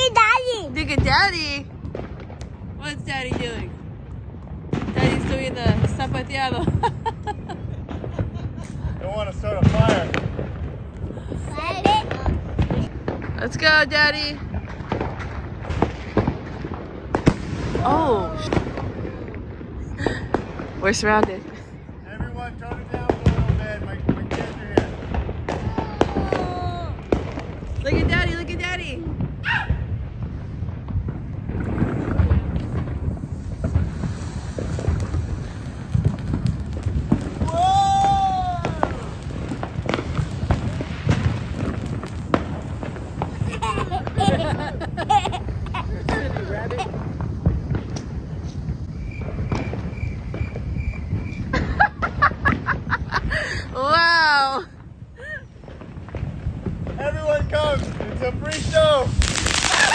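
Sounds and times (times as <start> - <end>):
fountain firework hissing: 0.0 - 3.9, 4.6 - 59.9
fireworks popping and crackling: 0.0 - 59.9.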